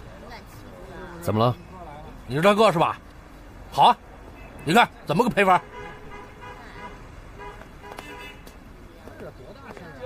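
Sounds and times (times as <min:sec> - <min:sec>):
low traffic hum: 0:00.0 - 0:10.0.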